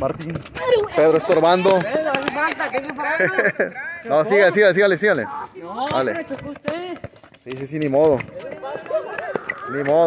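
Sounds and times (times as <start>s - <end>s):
voices talking and calling out: 0.0s - 10.0s.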